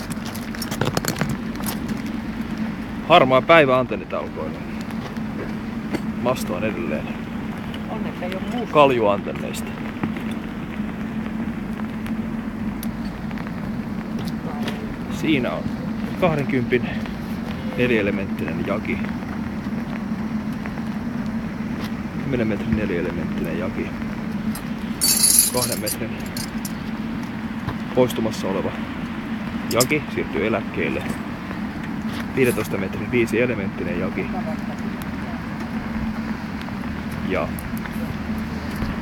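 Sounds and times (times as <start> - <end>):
background rumble: 0.0 - 39.0.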